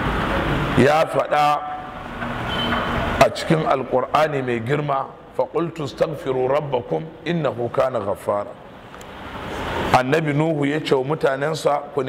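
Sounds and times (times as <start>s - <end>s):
background noise: 0.0s - 12.0s
man speaking into a microphone: 0.8s - 1.9s, 3.2s - 8.6s, 9.9s - 12.0s.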